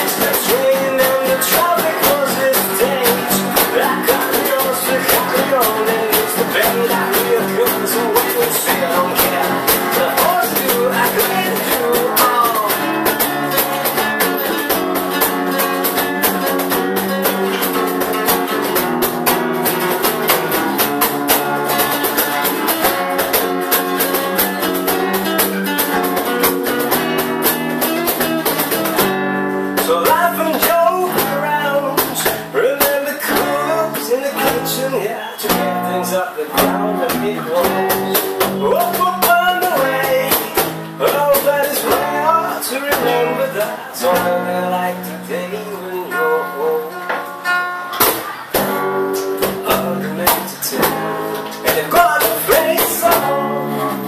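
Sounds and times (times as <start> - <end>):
acoustic guitars strummed: 0.0 - 54.0
cajon beat: 0.0 - 54.0.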